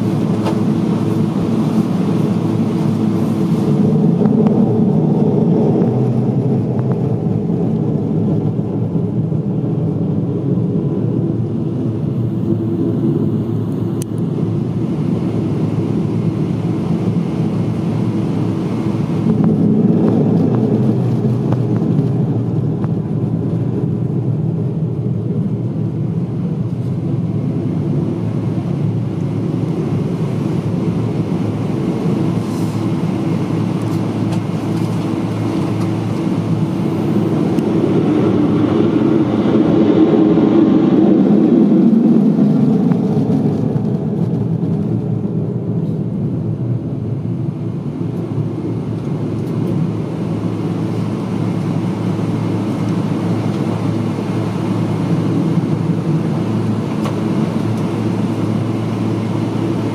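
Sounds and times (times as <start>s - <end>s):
jet roar of fighter taking off: 0.0s - 59.9s.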